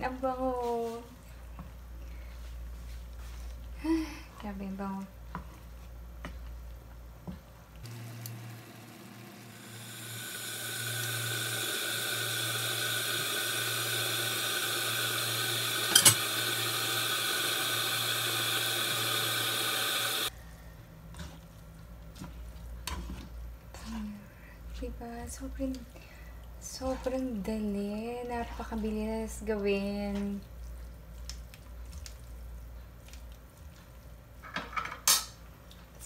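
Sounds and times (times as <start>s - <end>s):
food sizzling in a frying pan: 8.9s - 20.3s.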